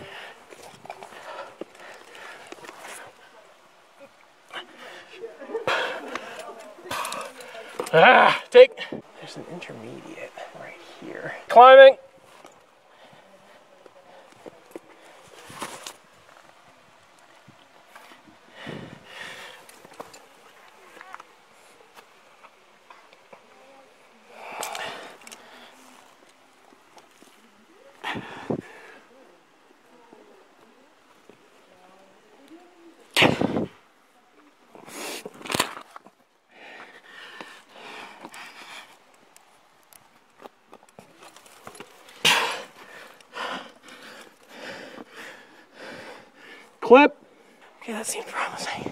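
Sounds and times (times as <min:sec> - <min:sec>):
effortful breathing: 0:04.4 - 0:08.0, 0:41.4 - 0:47.8
vocal grunts: 0:06.9 - 0:08.6.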